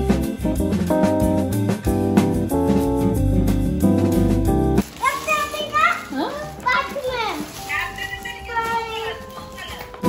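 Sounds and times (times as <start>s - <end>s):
guitar music: 0.0s - 10.0s.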